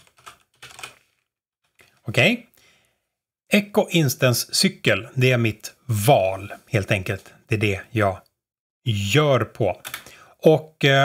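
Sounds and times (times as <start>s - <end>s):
computer keyboard typing: 0.0s - 1.0s.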